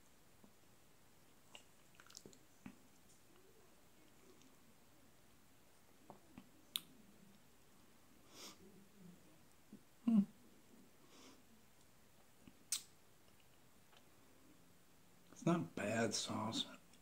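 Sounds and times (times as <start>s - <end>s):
mouth clicks and lip smacks: 1.5s - 2.8s, 6.1s - 7.0s, 12.4s - 14.1s.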